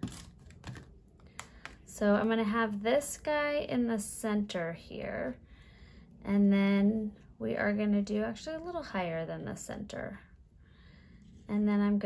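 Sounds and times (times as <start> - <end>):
cardstock pieces clicking and tapping: 0.0 - 1.9.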